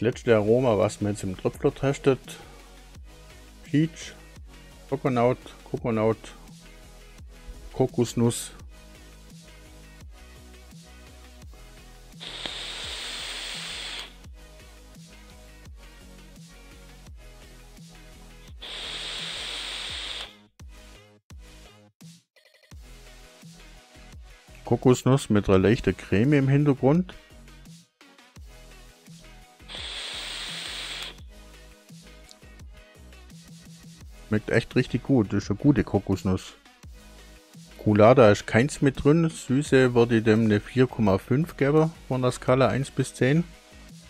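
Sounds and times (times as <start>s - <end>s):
background music: 0.0s - 44.0s
e-cigarette vapor hiss: 12.2s - 14.2s, 18.5s - 20.4s, 29.6s - 31.2s.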